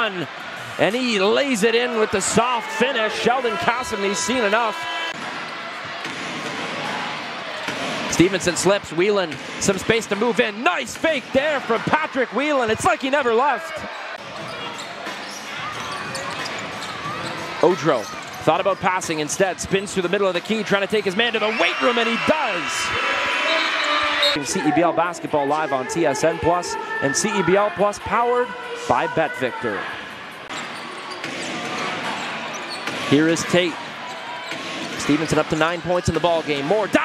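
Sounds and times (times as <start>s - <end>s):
crowd murmur: 0.0s - 9.1s
murmur of arena crowd: 0.0s - 37.0s
sneaker squeaks: 13.8s - 18.9s, 30.4s - 36.1s.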